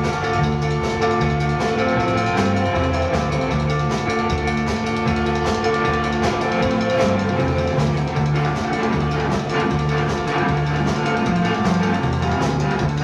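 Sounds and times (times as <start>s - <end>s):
bass guitar pattern: 0.0s - 13.0s
drum kit beat: 0.0s - 13.0s
electric guitar chords: 0.0s - 13.0s.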